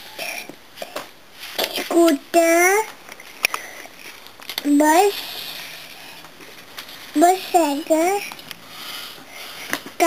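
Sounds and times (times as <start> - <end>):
young child speaking: 1.8 - 3.0, 4.6 - 5.3, 7.2 - 8.3
soft breath: 4.9 - 6.3, 6.9 - 10.0.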